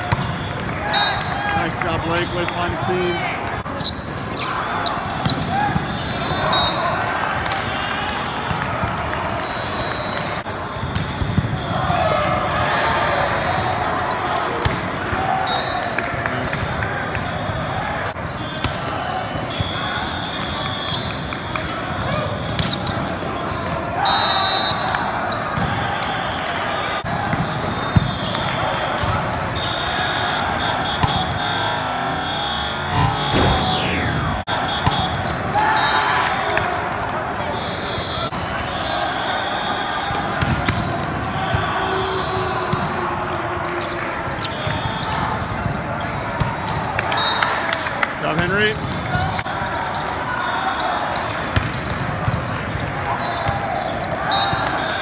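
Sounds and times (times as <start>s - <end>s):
volleyballs hit and bouncing: 0.0s - 2.7s, 3.4s - 9.2s, 9.8s - 12.6s, 27.0s - 29.5s.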